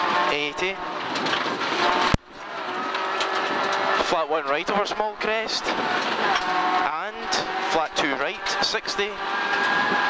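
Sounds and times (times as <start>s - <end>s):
car engine running hard: 0.0s - 10.0s.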